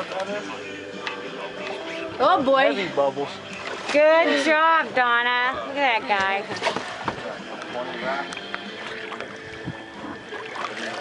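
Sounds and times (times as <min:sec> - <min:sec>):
water splashing beside boat hull: 0:00.0 - 0:02.6, 0:03.2 - 0:11.0.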